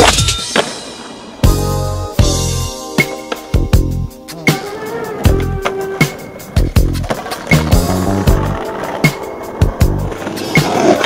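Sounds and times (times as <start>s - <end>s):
music with steady drum beat: 0.4s - 11.0s
skateboard wheels on pavement: 3.0s - 11.0s
skateboard clacks: 4.5s - 11.0s.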